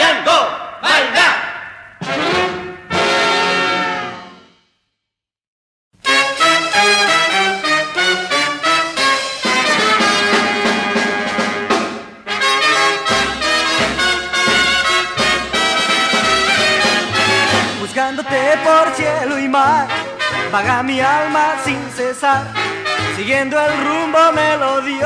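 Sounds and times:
dance band with trumpets and trombones: 0:00.0 - 0:04.8, 0:06.0 - 0:25.0.

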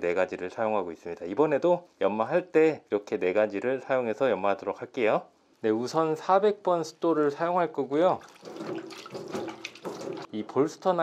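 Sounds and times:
hand splashing water: 0:08.2 - 0:10.3.

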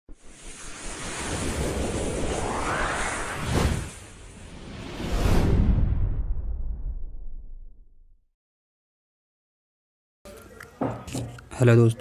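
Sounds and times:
rushing whoosh: 0:00.1 - 0:07.7.

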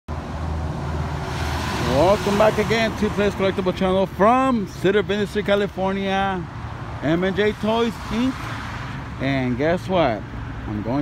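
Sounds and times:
truck engine rumble passing: 0:00.1 - 0:10.6.

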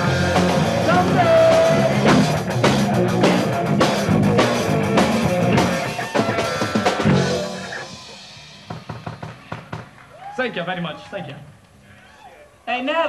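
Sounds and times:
punk rock band playing: 0:00.0 - 0:10.0
man talking: 0:10.4 - 0:11.6.

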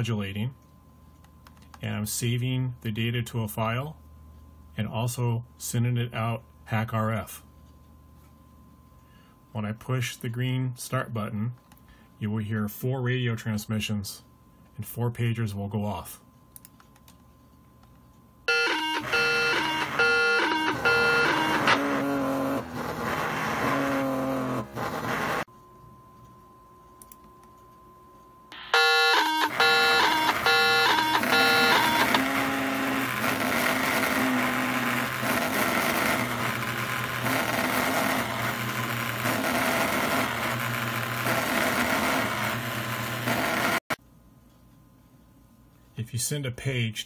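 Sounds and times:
electronic buzzing data tones: 0:18.5 - 0:22.6, 0:28.5 - 0:40.3.

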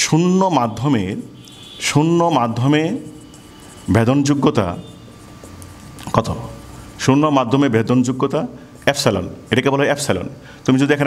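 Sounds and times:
low room hum: 0:00.0 - 0:11.0
marker writing on whiteboard: 0:00.6 - 0:09.7.

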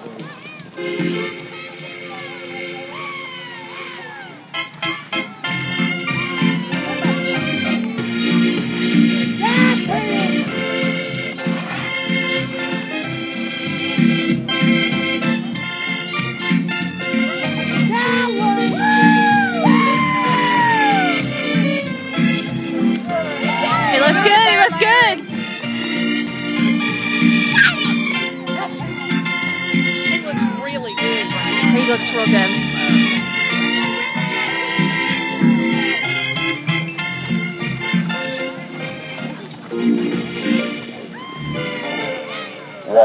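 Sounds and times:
organ playing held chords: 0:00.8 - 0:41.1.

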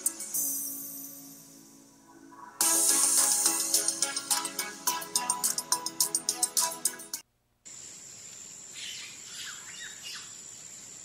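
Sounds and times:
bird chirps: 0:08.7 - 0:10.4.

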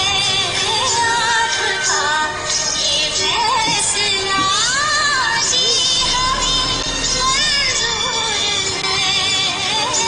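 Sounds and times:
high singing voice: 0:00.6 - 0:10.0
song music: 0:06.0 - 0:08.6.

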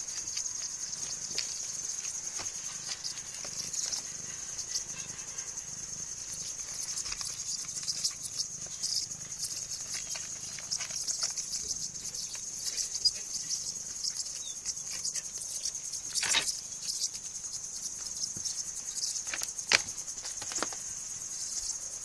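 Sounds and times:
crickets chirring: 0:00.0 - 0:22.0
rustling and scuffling clicks: 0:19.2 - 0:20.9.

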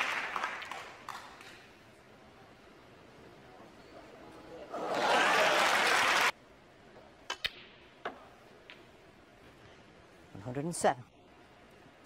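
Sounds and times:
audience applause: 0:00.0 - 0:01.4, 0:04.8 - 0:06.3.

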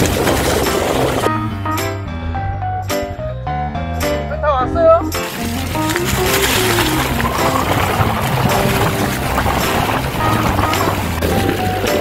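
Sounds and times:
bike tyre and wind noise: 0:00.0 - 0:03.3, 0:05.1 - 0:12.0.

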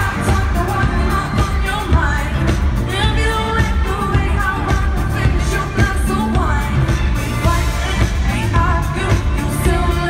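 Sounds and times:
live pop band: 0:00.0 - 0:10.0
steady drum beat: 0:00.0 - 0:10.0
woman singing into microphone: 0:00.0 - 0:10.0.

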